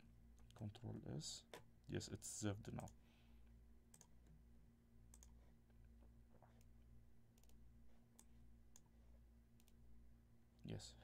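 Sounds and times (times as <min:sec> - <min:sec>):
faint steady hum: 0:00.0 - 0:11.0
computer mouse clicks: 0:02.8 - 0:03.0, 0:03.9 - 0:04.4, 0:05.1 - 0:05.4, 0:06.6 - 0:07.6, 0:09.6 - 0:09.8.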